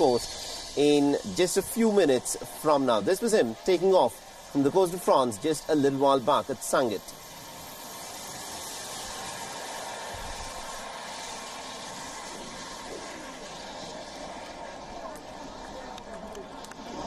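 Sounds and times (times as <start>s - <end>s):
jet turbines hissing: 0.0s - 17.0s.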